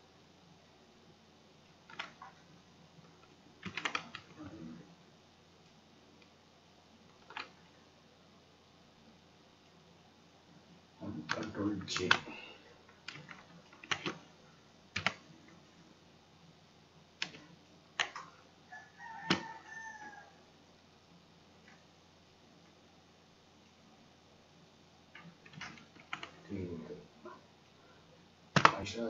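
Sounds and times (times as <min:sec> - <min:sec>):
mouse and keyboard clicks: 0:01.9 - 0:02.4, 0:03.6 - 0:04.3, 0:07.1 - 0:07.6, 0:13.0 - 0:14.2, 0:17.2 - 0:18.3.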